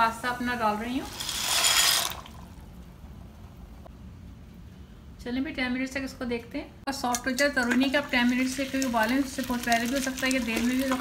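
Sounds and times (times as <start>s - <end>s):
water boiling: 0.0s - 3.3s, 7.3s - 11.0s.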